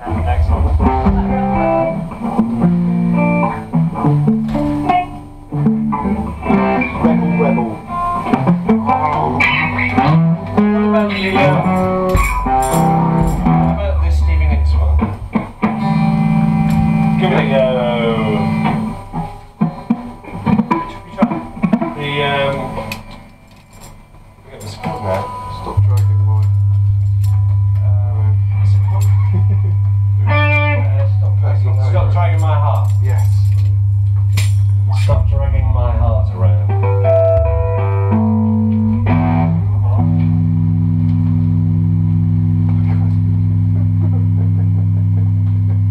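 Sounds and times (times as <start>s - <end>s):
bass guitar: 0.0s - 24.0s, 24.9s - 45.9s
drums: 0.0s - 24.0s
electric guitar: 0.0s - 45.9s.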